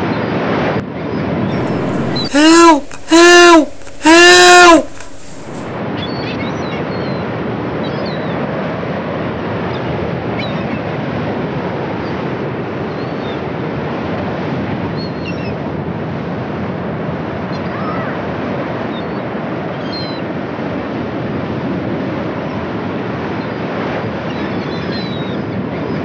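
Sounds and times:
loud rising and falling calls: 1.6s - 5.6s.

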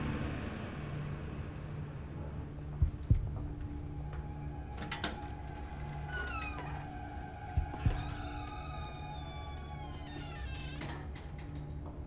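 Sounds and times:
low pulsing drone: 0.0s - 10.3s
eerie sliding tones: 0.0s - 10.8s
low thuds: 2.0s - 4.4s.

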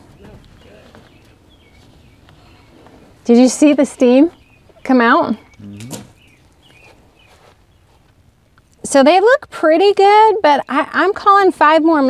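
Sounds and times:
faint bird chirps: 0.1s - 8.1s.

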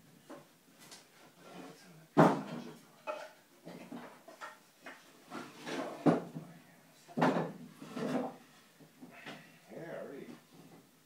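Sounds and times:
wooden lath knocking and scraping: 7.2s - 9.5s.

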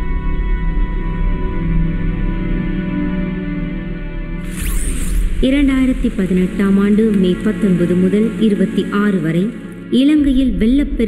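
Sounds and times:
background music: 0.0s - 11.0s
narrator speaking: 5.4s - 11.0s.

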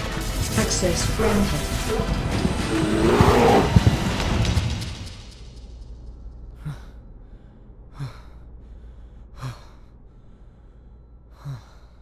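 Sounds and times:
man gasping breaths: 6.5s - 12.0s.

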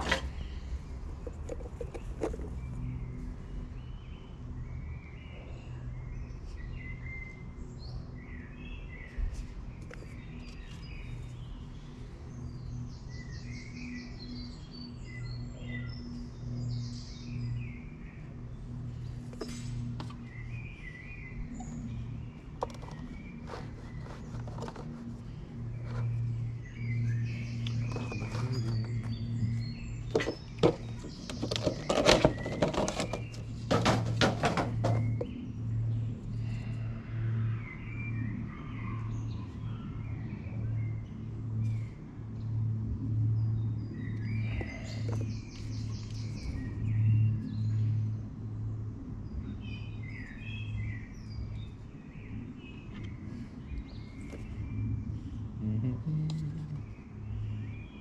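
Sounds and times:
birds chirping: 0.0s - 58.0s
plastic cat flap parts knocking: 30.1s - 35.3s.

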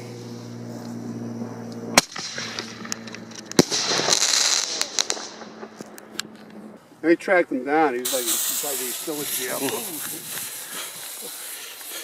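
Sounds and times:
fireworks banging: 2.0s - 6.8s, 7.9s - 12.0s
fireworks crackling hiss: 3.6s - 5.7s, 7.8s - 12.0s.

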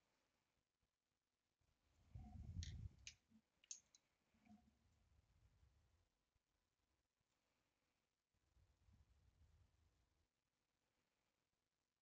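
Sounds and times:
wooden pencils clicking: 2.6s - 4.0s.

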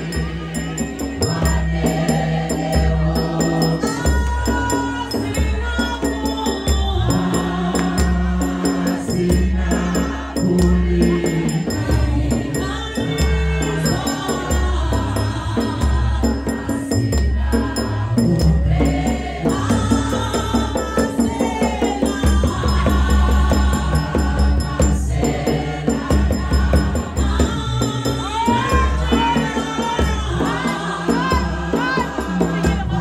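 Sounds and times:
choir singing a hymn: 0.0s - 33.0s
deep pulsing beat: 0.0s - 33.0s
quick steady percussive strikes: 0.0s - 33.0s.

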